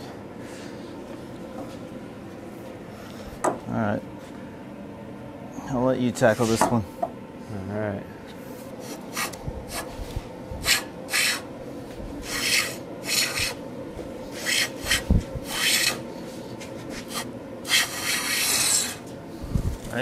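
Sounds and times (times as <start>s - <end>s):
hand plane shaving wood: 12.2s - 13.6s, 14.3s - 16.0s, 17.0s - 19.0s.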